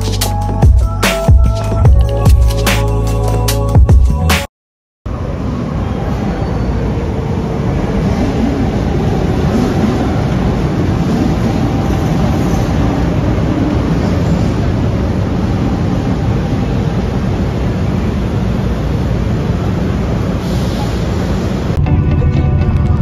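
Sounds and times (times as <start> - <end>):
train wheels rumbling on rail: 5.6 - 21.8.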